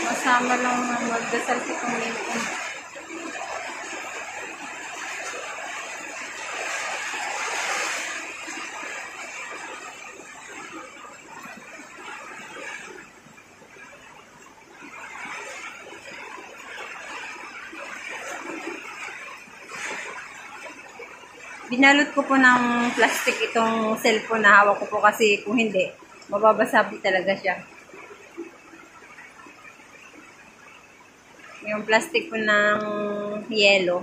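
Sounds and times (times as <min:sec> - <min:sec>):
heavy rain pouring: 0:00.0 - 0:29.3.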